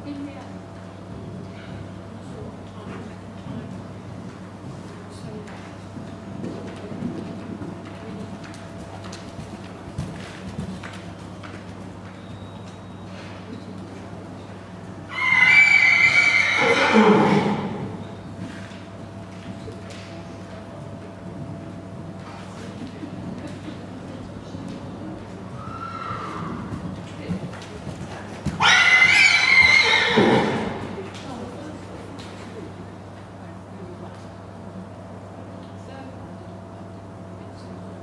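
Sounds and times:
horse whinnying: 0:15.1 - 0:18.0, 0:25.6 - 0:26.7, 0:28.6 - 0:30.9.

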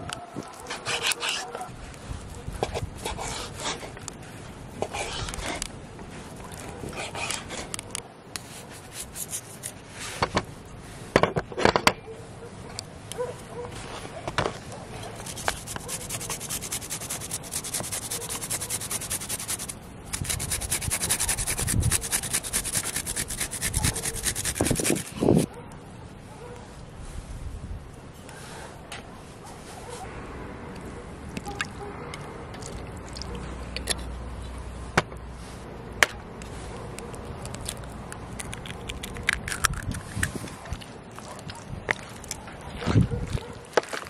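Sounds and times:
garlic rasped on a grater: 0:15.2 - 0:25.5.

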